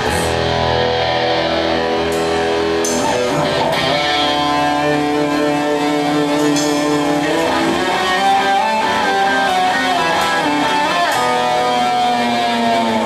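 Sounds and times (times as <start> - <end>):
electric guitar chords: 0.0 - 13.0.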